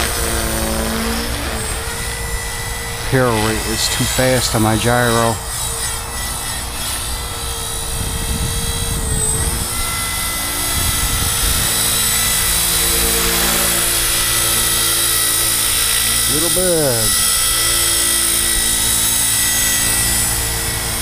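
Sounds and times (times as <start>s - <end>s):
rc helicopter rotor whine: 0.0s - 21.0s.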